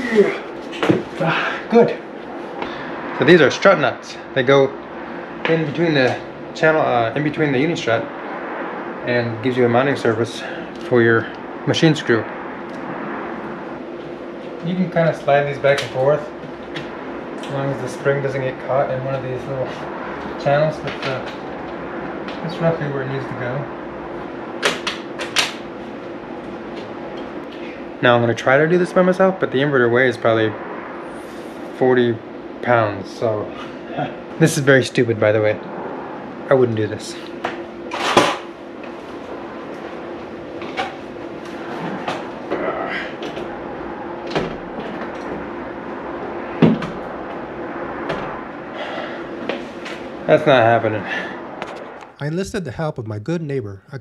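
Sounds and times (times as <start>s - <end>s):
steady background hum: 0.0s - 54.0s.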